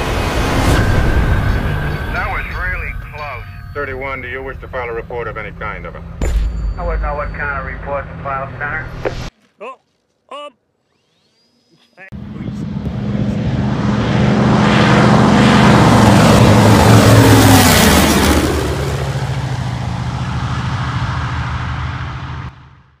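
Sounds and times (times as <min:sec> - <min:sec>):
propeller plane flyby: 0:00.0 - 0:06.2, 0:12.1 - 0:23.0.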